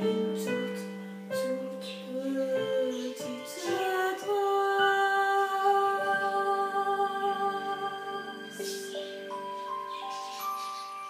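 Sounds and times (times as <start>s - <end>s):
woman singing long note: 0.0s - 8.6s.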